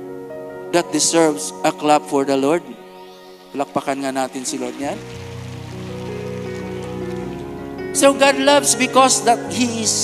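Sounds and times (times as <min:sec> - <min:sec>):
soft music with sustained chords: 0:00.0 - 0:10.0
congregation clapping: 0:03.4 - 0:08.8.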